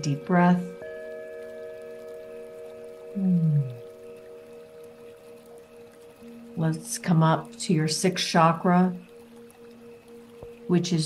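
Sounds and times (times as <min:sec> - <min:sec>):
long held music tones: 0:00.0 - 0:11.0.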